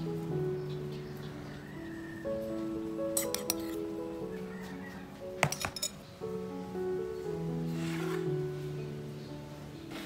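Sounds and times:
background music with held notes: 0:00.0 - 0:10.0
metal kitchenware clinking: 0:03.1 - 0:03.9, 0:05.4 - 0:06.1.

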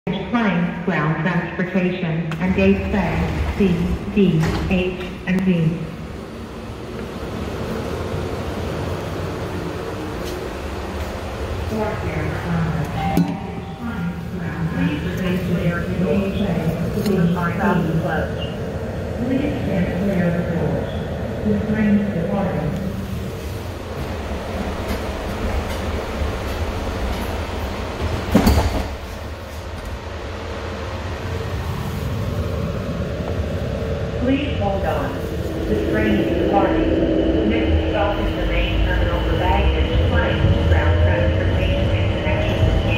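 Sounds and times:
train car rumble and hum: 0:00.0 - 0:42.9.

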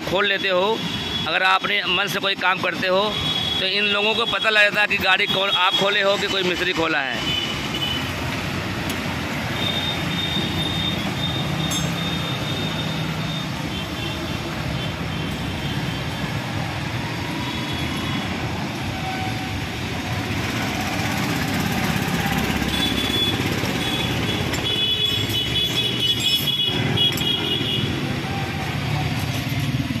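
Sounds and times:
street traffic: 0:00.0 - 0:30.0.

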